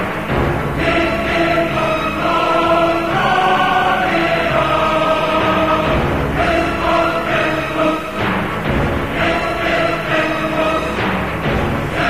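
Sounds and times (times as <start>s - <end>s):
choir-like voices: 0.0s - 12.0s
sustained low notes: 0.0s - 12.0s.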